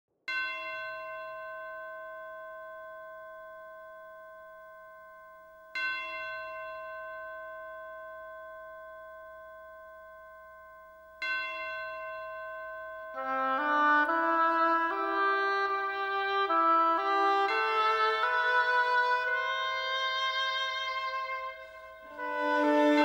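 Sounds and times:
bell ringing: 0:00.3 - 0:23.0.

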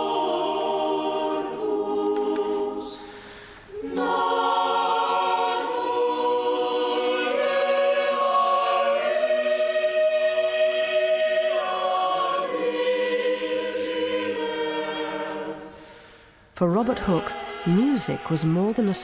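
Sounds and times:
choir singing sustained chords: 0:00.0 - 0:19.0.

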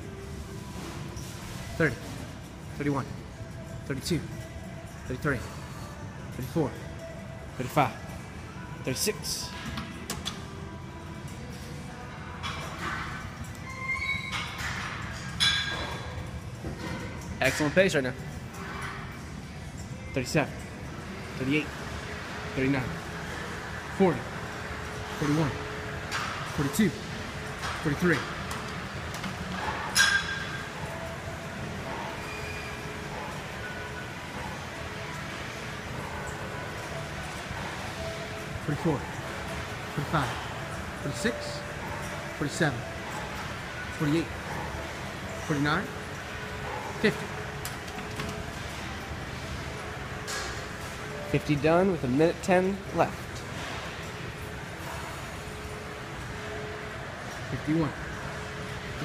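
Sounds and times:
gym background noise: 0:00.0 - 0:59.0.

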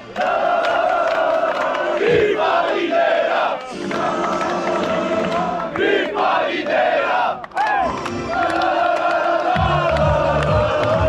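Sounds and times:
crowd chanting and shouting: 0:00.0 - 0:11.0.

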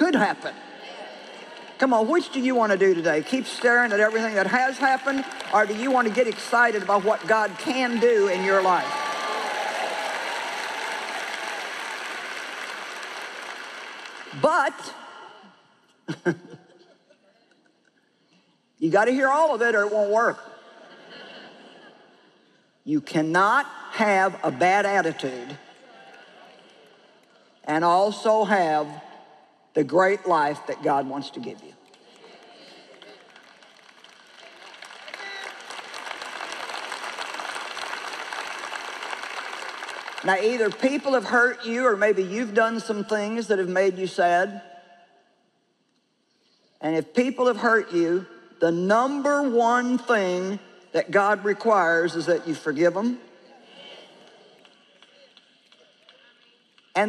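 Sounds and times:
large audience applauding: 0:00.8 - 0:15.4, 0:31.8 - 0:41.2, 0:53.8 - 0:57.0.

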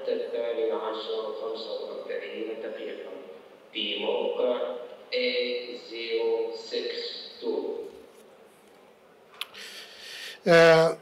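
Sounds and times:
man speaking into a microphone: 0:00.0 - 0:08.0, 0:09.6 - 0:11.0.

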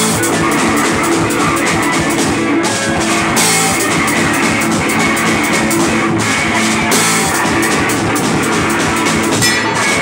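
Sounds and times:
drum kit with cymbals: 0:00.0 - 0:10.0
electric guitar: 0:00.0 - 0:10.0.

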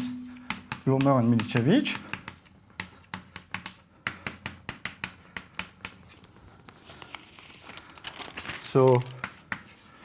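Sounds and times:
chalk writing on chalkboard: 0:00.0 - 0:07.2, 0:09.2 - 0:10.0.

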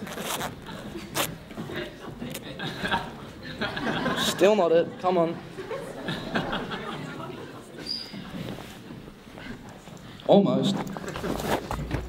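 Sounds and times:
zipper rasp: 0:00.0 - 0:01.3.

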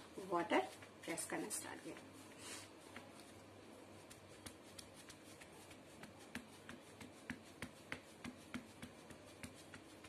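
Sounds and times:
sponge rubbing on paper: 0:00.3 - 0:10.0.

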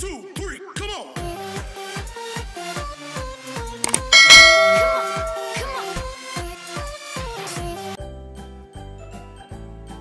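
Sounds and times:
quick clicks: 0:03.9 - 0:04.1
bell-like notification ding: 0:04.0 - 0:05.8.

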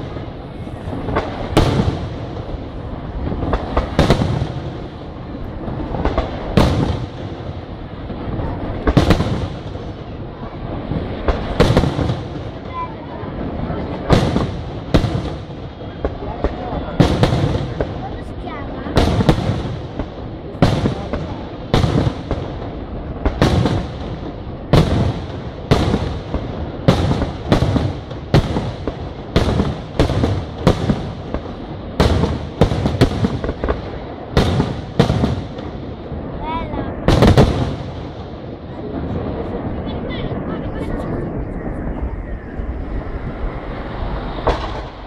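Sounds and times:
continuous low rumble: 0:00.0 - 0:45.0.

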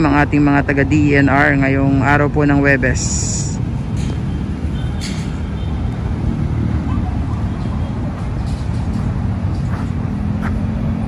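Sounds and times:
low city rumble: 0:00.0 - 0:11.0.

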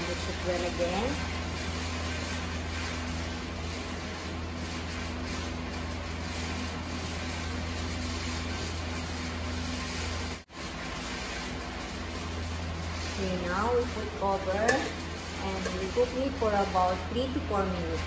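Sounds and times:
food sizzling in a frying pan: 0:00.0 - 0:18.0
wooden spatula stirring: 0:00.0 - 0:18.0.

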